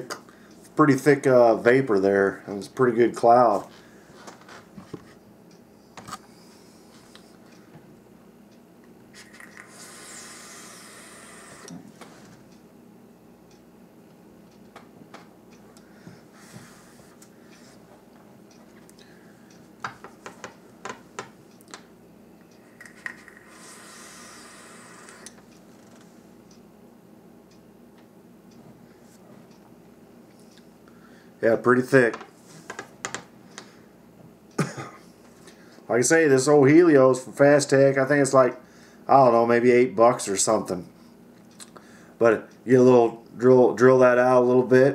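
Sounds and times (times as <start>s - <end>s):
breathy vaping hisses: 9.5s - 11.8s, 23.4s - 25.3s
small clicks and taps: 19.8s - 21.9s, 32.1s - 33.7s.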